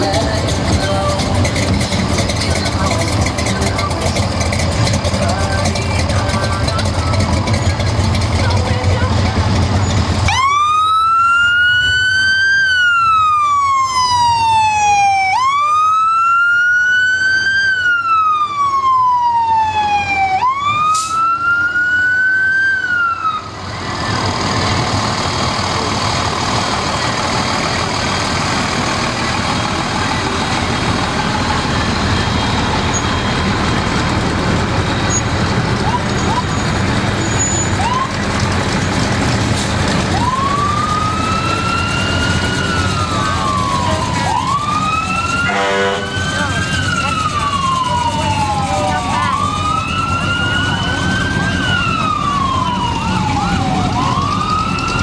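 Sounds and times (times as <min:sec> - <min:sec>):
fire truck siren wailing: 0:00.0 - 0:55.0
heavy engine rumble: 0:00.0 - 0:55.0.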